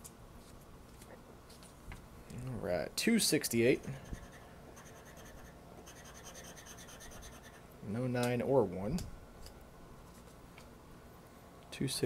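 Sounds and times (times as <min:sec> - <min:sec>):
scratching lottery ticket: 0:04.0 - 0:07.6.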